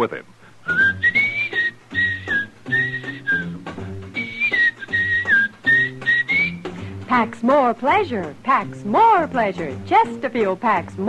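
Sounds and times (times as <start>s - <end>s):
man whistling a melody: 0.6s - 6.8s
small jazz band: 0.6s - 11.0s.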